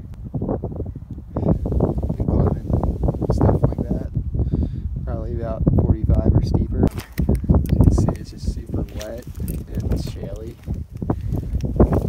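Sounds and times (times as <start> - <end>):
boots scraping on loose shale: 8.1 - 12.0.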